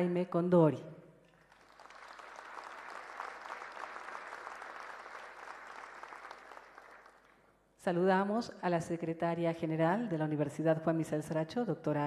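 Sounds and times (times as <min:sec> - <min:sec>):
audience applauding: 0:01.4 - 0:07.3.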